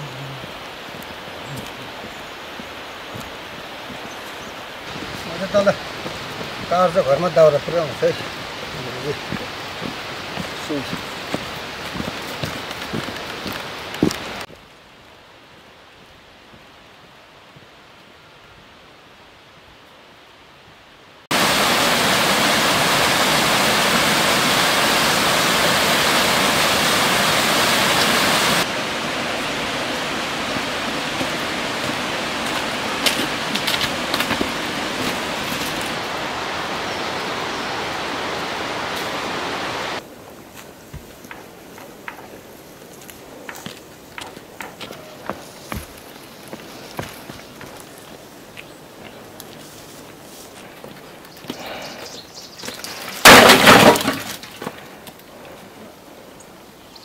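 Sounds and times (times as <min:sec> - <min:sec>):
rushing water: 0:00.0 - 0:41.6.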